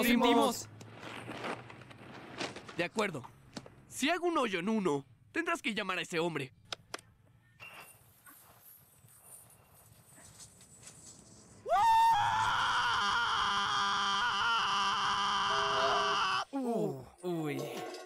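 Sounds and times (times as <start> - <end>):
young man's high-pitched yell: 11.7 - 16.6.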